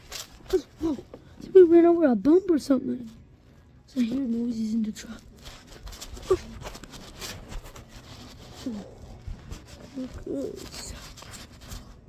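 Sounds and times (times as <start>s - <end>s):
blanket rustling on microphone: 0.0s - 12.0s.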